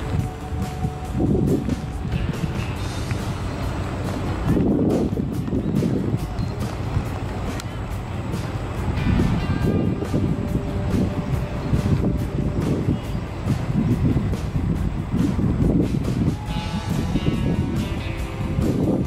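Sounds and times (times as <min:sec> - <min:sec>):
distant voices calling out: 0:00.0 - 0:19.0
wind rumble on microphone: 0:00.0 - 0:19.0.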